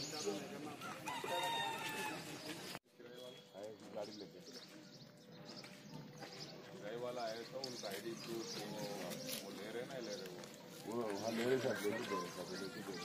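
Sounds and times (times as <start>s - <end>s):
rooster crowing: 0.9s - 2.3s.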